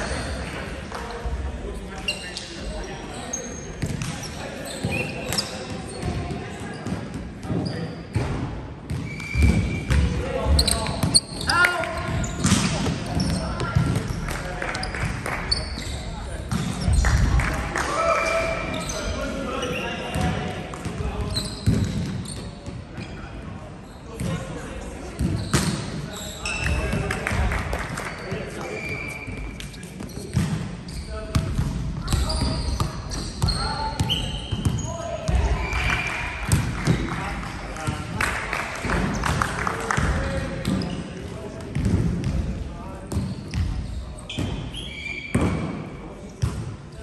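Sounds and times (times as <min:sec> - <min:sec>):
players' voices in a gym hall: 0:00.0 - 0:47.0
sneakers squeaking on wooden court: 0:01.9 - 0:08.3, 0:08.9 - 0:17.2, 0:18.2 - 0:24.5, 0:25.1 - 0:27.0, 0:28.1 - 0:37.0, 0:40.5 - 0:42.4, 0:43.0 - 0:46.7.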